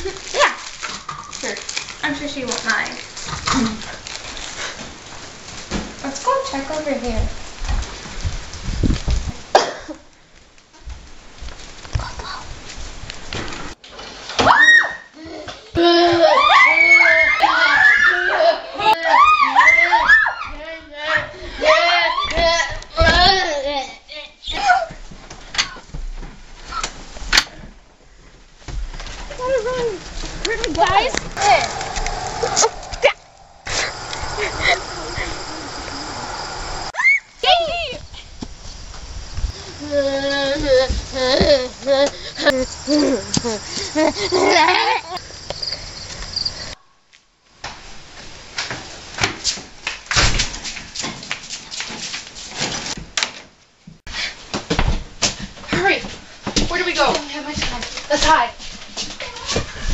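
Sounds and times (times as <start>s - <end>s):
girl squealing: 14.4s - 15.1s, 15.8s - 20.5s, 37.0s - 38.0s
footsteps thumping: 40.6s - 44.0s.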